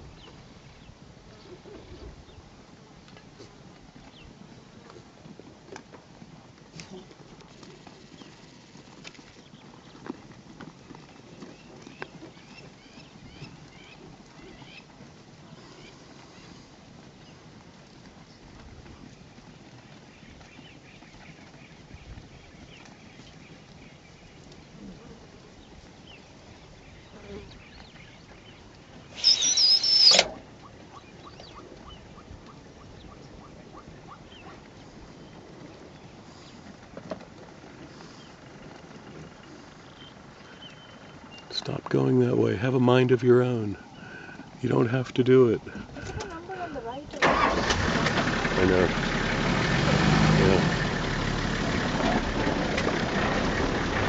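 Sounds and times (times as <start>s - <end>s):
birds chirping: 7.7s - 10.1s, 10.8s - 14.9s, 19.1s - 24.8s, 25.5s - 36.9s, 37.6s - 54.0s.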